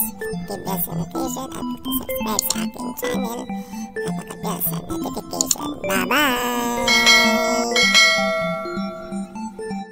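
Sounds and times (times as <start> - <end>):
soft short musical notes: 6.9 - 9.5
bright bell chimes: 6.9 - 9.6.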